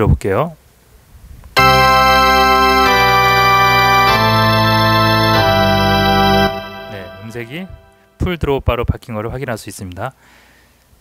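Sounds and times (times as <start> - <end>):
organ playing held chords: 1.6 - 8.2.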